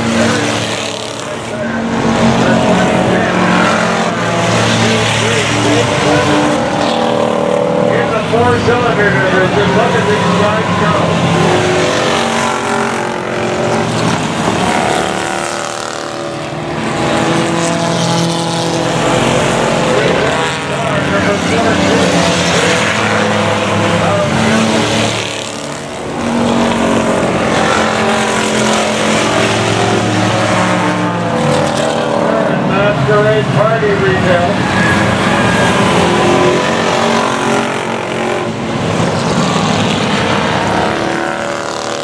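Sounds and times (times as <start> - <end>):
race car engines: 0.0 - 42.0.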